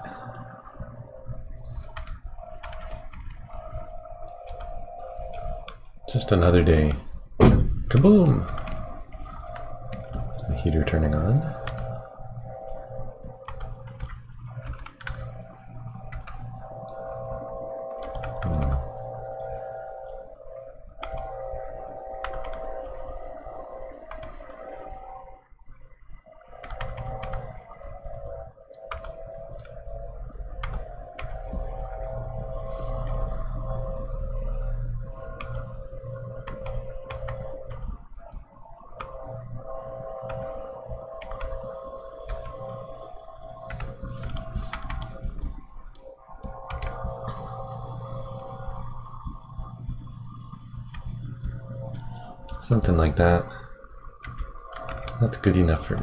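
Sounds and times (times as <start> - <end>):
heater humming: 0.0 - 56.0.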